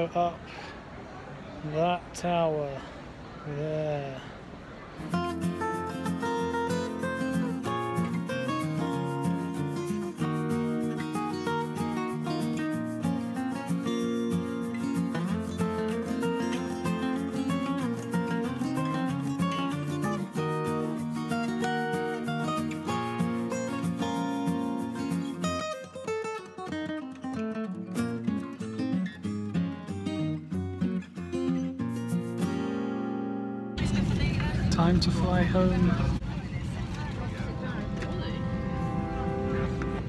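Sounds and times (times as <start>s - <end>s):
acoustic guitar music: 4.7s - 40.0s.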